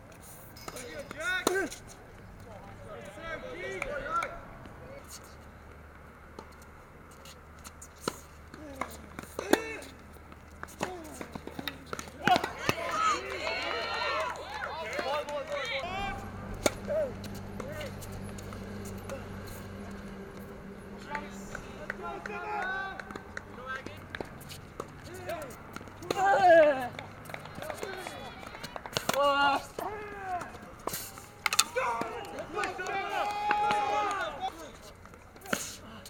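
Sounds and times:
racket hitting ball: 10.6 - 12.9, 14.9 - 33.0
indistinct voices: 10.8 - 34.8.

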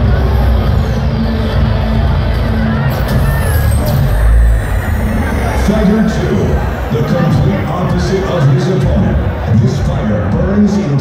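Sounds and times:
deep bass rumble: 1.7 - 9.8
falling high swooshes: 3.0 - 8.3
hissing noise: 3.0 - 9.3.

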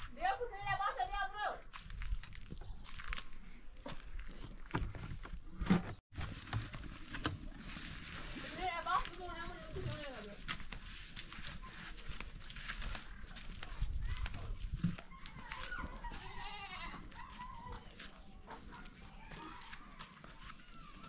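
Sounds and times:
goats bleating: 16.1 - 17.2.

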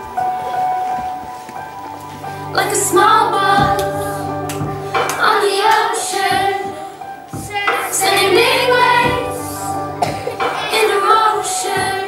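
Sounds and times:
musical accompaniment: 0.0 - 12.0
children singing together: 2.2 - 12.0.

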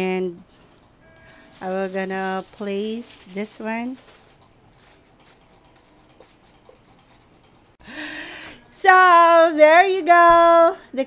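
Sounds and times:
metal tin clattering on wire rack: 1.3 - 7.6
aluminium foil crinkling: 1.3 - 7.7.

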